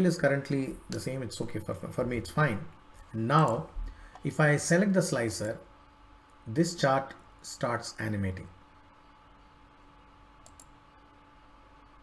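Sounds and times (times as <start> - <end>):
low steady hum: 0.0 - 12.0
computer mouse clicks: 10.4 - 10.8.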